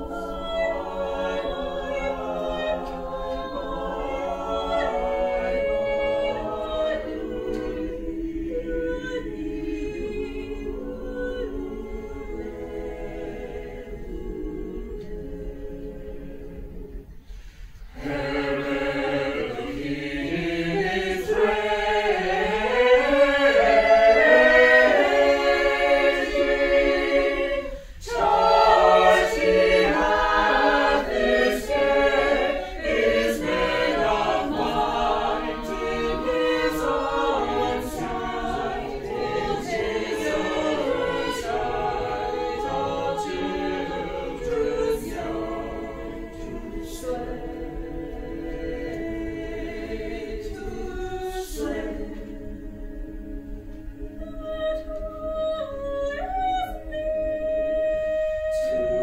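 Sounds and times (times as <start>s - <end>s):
mixed choir singing a cappella: 0.0s - 59.0s.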